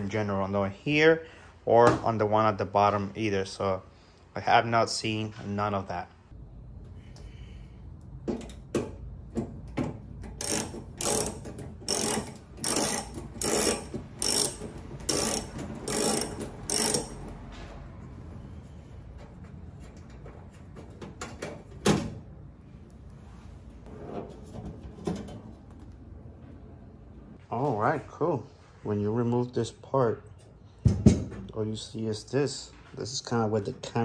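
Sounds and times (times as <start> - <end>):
ratcheting screwdriver clicking: 10.3 - 17.3.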